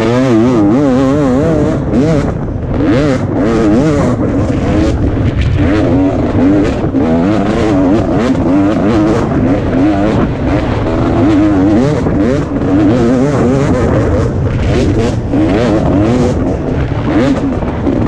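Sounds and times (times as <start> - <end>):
dirt bike engine revving: 0.0 - 18.0.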